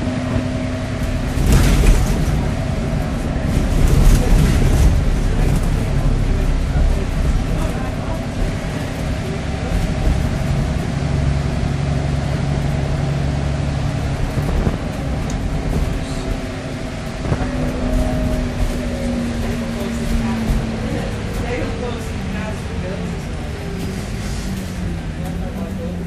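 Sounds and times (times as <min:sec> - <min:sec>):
bus engine running: 0:00.0 - 0:26.0.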